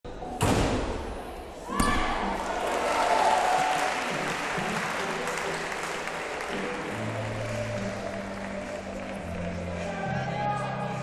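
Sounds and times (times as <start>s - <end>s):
faint music: 0.1s - 11.0s
audience applauding: 2.4s - 10.0s.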